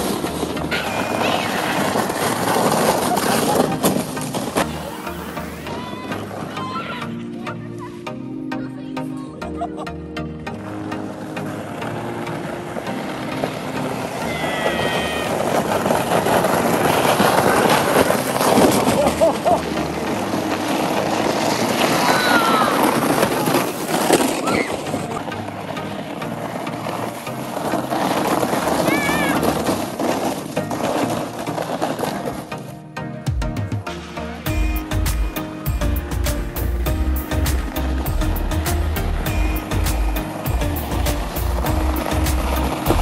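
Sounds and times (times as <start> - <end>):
background music: 0.0 - 43.0
sleds scraping down snow: 0.0 - 43.0
children shouting: 0.7 - 2.2, 4.8 - 7.3, 14.2 - 15.6, 21.9 - 23.6, 24.4 - 25.0, 28.8 - 29.6.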